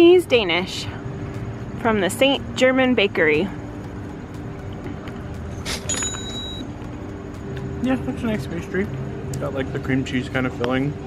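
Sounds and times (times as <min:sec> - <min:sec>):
city road traffic hum: 0:00.0 - 0:11.0.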